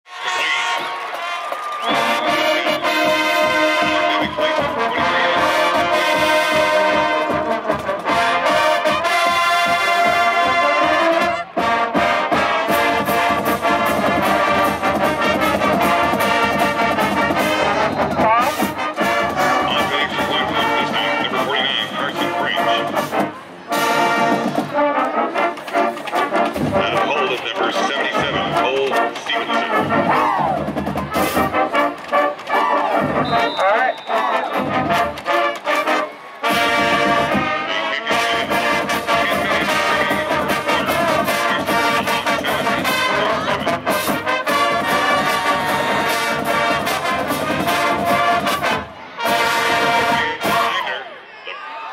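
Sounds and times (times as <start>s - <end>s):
marching band playing: 0.1s - 51.1s.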